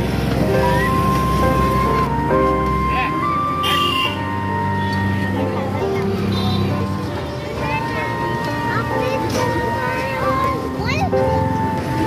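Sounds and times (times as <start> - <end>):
melody of long held notes: 0.0 - 12.0.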